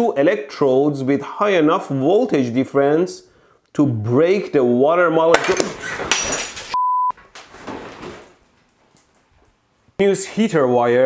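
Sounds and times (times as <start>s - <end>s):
censor bleep: 6.8s - 7.2s.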